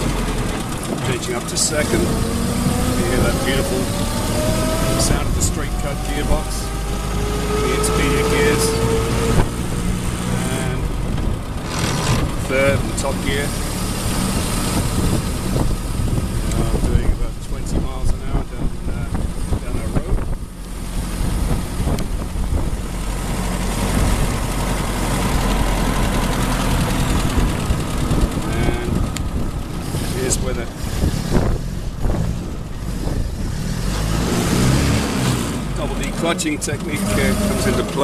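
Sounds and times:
old car engine running: 0.0 - 38.0.

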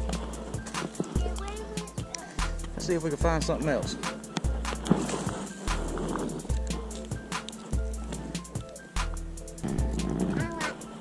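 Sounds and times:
sharp percussion ticks: 0.0 - 5.0, 5.6 - 11.0.

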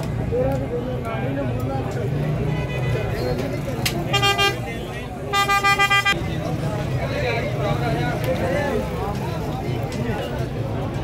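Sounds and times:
crowd chatter: 0.0 - 11.0
vehicle horn honking: 4.1 - 6.2.

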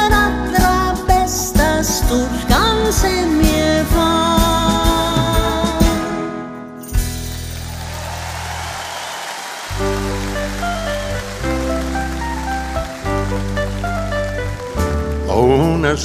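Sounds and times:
live band playing: 0.0 - 8.8, 9.6 - 16.0.

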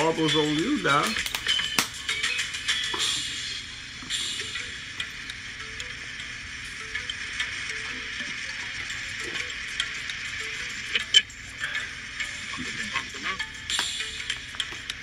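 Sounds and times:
faint background music: 0.0 - 15.0
eating clicks and crackles: 1.0 - 2.0.

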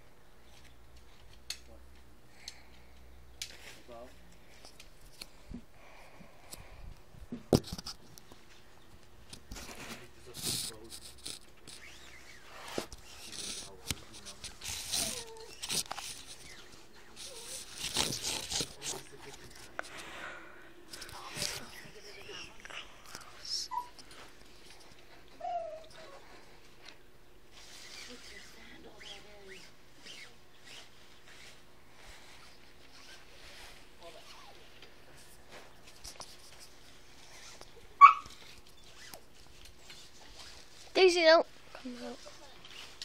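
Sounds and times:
faint voices: 13.1 - 24.3
tent pole sections clicking: 17.2 - 19.8.

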